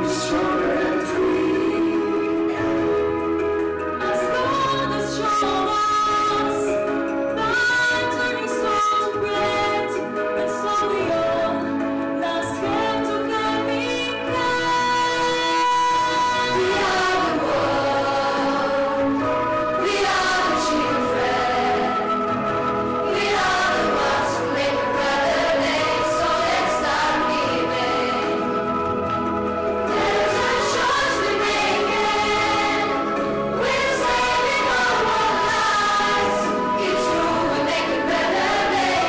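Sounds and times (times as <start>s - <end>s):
group of singers holding notes: 0.0s - 6.8s, 12.5s - 39.0s.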